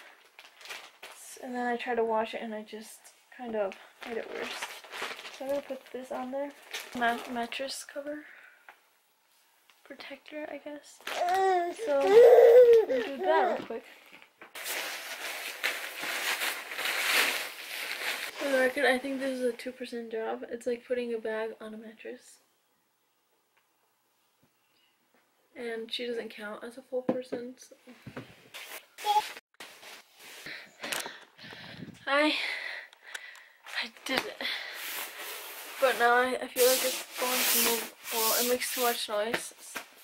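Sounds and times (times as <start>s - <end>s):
mattress protector crackling: 4.0s - 7.6s, 14.5s - 18.6s.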